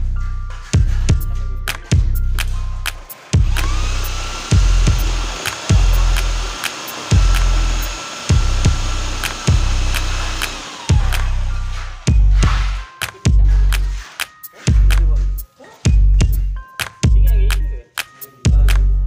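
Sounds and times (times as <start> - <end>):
music with heavy bass beat: 0.0 - 19.0
electric drill mixer whining: 3.1 - 12.9.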